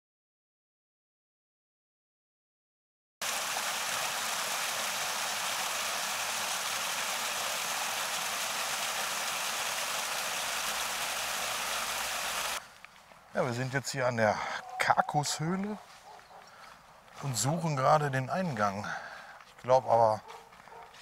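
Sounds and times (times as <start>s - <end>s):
small waterfall rushing: 3.2s - 12.6s.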